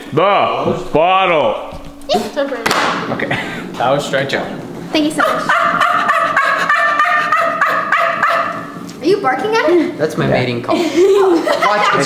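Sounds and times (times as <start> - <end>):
person making gobbling call: 5.2 - 8.7.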